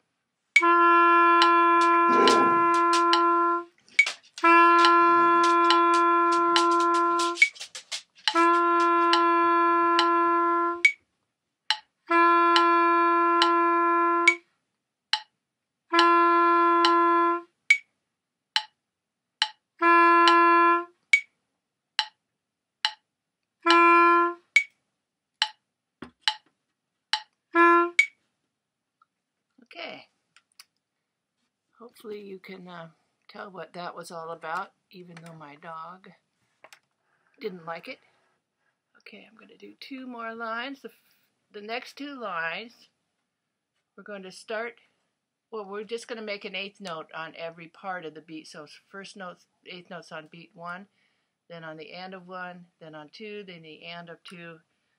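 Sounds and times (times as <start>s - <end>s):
wind instrument long held notes: 0.6s - 3.7s, 4.4s - 7.5s, 8.3s - 10.9s, 12.1s - 14.4s, 15.9s - 17.5s, 19.8s - 20.9s, 27.6s - 28.0s
woman speaking: 2.1s - 2.7s, 29.6s - 30.0s, 31.8s - 36.1s, 37.4s - 38.0s, 39.1s - 41.0s, 41.6s - 42.8s, 44.0s - 44.8s, 45.6s - 50.8s, 51.5s - 54.6s
metronome clicking: 4.0s - 9.2s, 26.2s - 26.4s.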